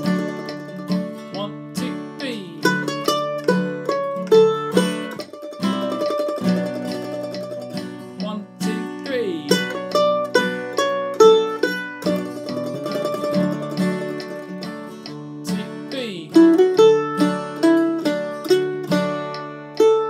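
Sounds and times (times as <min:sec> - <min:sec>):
acoustic guitar strumming chords: 0:00.0 - 0:20.0
mandolin melody: 0:00.0 - 0:20.0.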